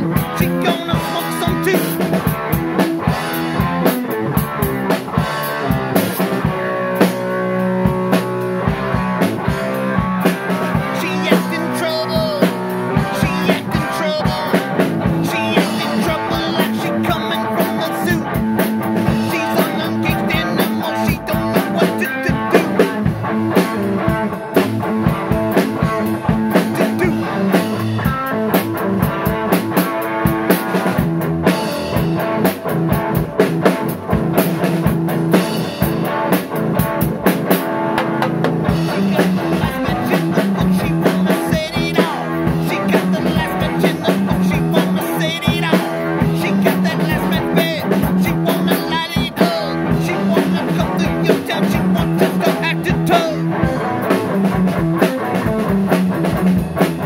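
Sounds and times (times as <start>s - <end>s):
drum kit playing rock: 0.0s - 57.0s
guitar playing: 0.0s - 57.0s.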